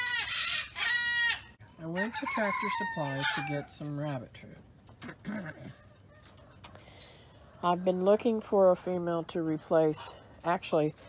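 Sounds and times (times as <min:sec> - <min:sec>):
chickens calling: 0:00.0 - 0:03.9
woman speaking: 0:01.8 - 0:04.6, 0:07.6 - 0:11.0.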